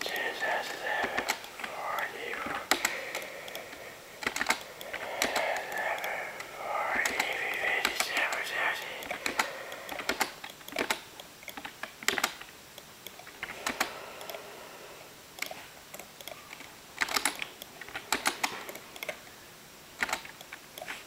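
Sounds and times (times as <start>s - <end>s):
muffled voice: 0.0s - 4.1s, 4.8s - 9.8s
clicks and taps: 0.0s - 8.4s.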